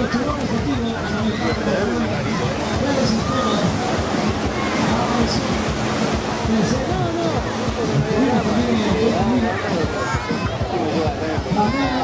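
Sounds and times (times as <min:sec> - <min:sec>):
people's voices: 0:00.0 - 0:12.0
surf rushing: 0:00.0 - 0:12.0
wind: 0:00.0 - 0:12.0.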